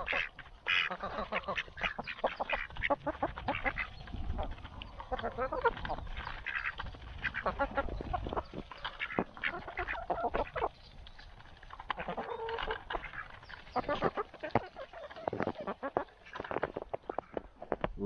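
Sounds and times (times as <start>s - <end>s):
ducks quacking: 0.0s - 17.8s
hens clucking: 0.0s - 17.9s.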